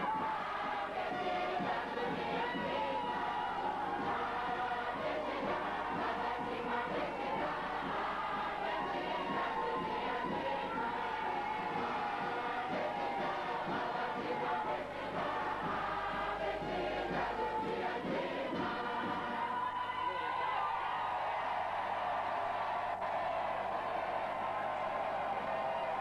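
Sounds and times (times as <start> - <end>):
crowd noise: 0.0 - 26.0
crowd singing in chorus: 0.0 - 26.0.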